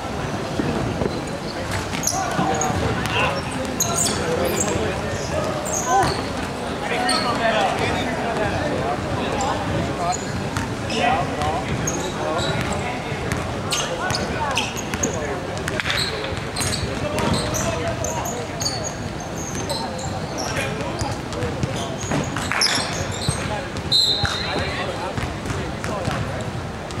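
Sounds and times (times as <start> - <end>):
people talking and shouting: 0.0 - 27.0
sneakers squeaking: 0.2 - 8.2, 9.2 - 27.0.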